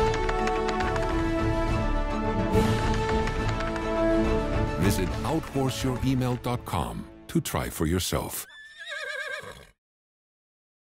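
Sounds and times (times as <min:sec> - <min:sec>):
horse whinnying: 0:08.4 - 0:09.8.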